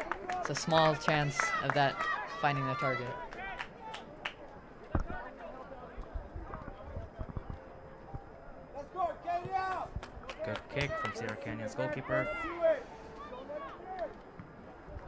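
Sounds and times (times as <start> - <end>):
players shouting: 0.0 - 4.1, 10.7 - 14.2.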